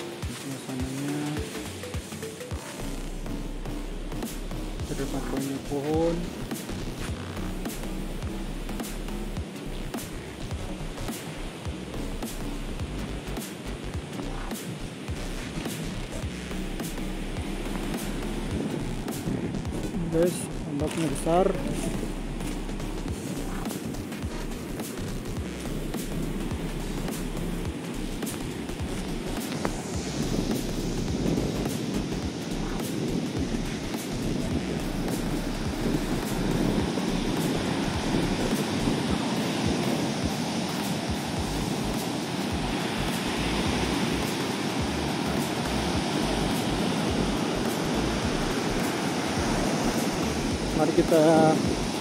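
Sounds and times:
ocean surf breaking on beach: 0.0 - 3.0, 4.8 - 7.8, 16.8 - 25.3, 25.9 - 52.0.

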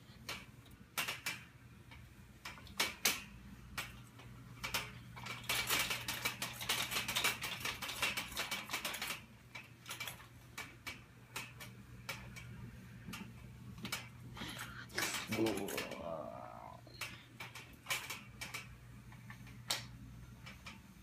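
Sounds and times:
ride mechanism clattering clicks: 0.2 - 16.3
steady low hum: 9.2 - 21.0.

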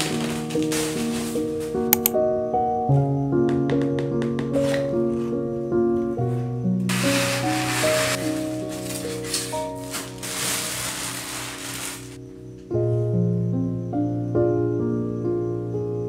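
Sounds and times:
soft background music: 0.0 - 16.0
foam sliding out of cardboard box: 6.9 - 12.2.

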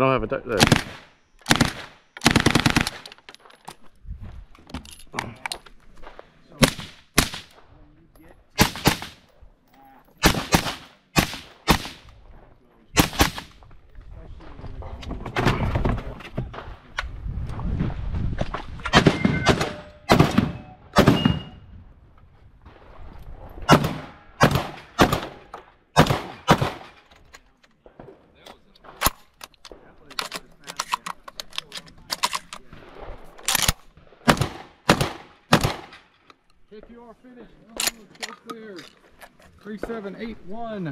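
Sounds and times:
shotgun gunshots: 0.5 - 3.0, 6.6 - 7.6, 8.6 - 9.2, 10.2 - 12.1, 13.0 - 13.6, 18.9 - 21.6, 23.7 - 27.0, 32.7 - 36.1
shots hitting steel targets: 18.9 - 21.6, 23.7 - 27.1.

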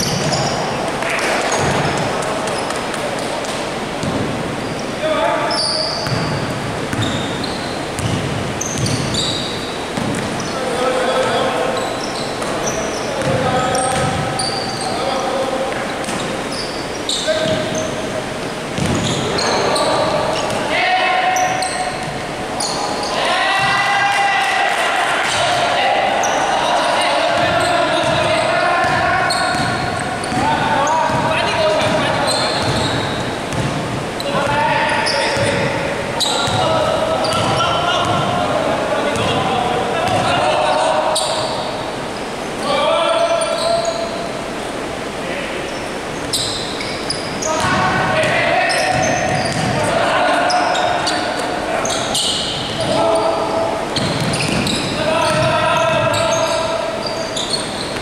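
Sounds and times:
players calling out: 0.0 - 58.0
basketball bouncing on wooden floor: 4.0 - 4.3, 6.0 - 7.2, 8.0 - 9.2, 10.0 - 10.4, 13.2 - 14.3, 17.4 - 17.7, 18.8 - 19.2, 27.4 - 30.4, 31.1 - 32.0, 32.6 - 33.9, 37.3 - 38.4, 48.9 - 49.8, 54.0 - 56.2.

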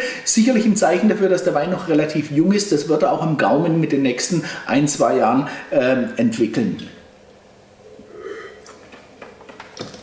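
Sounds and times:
sipping wine: 7.8 - 9.1.

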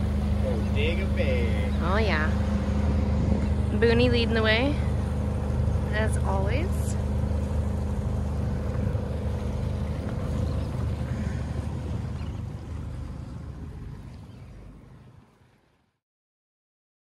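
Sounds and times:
boat engine humming: 0.0 - 16.0
water noise: 0.0 - 16.0
wind: 0.0 - 16.0.

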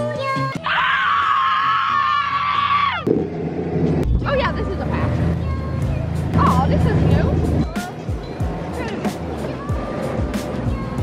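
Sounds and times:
girls screaming together: 0.6 - 3.0.

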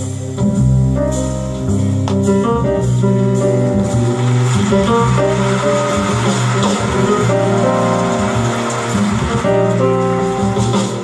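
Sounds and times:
walking bass: 0.0 - 11.0.

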